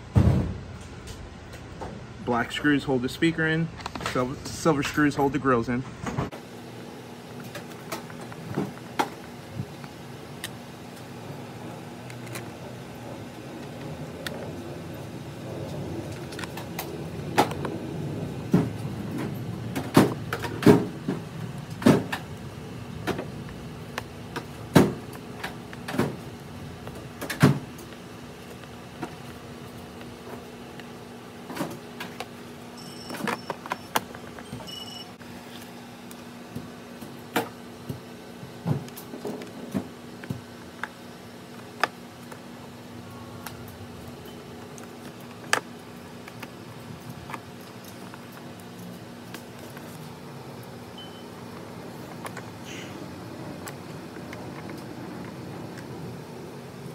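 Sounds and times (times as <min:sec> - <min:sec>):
steady low hum: 0:00.0 - 0:56.9.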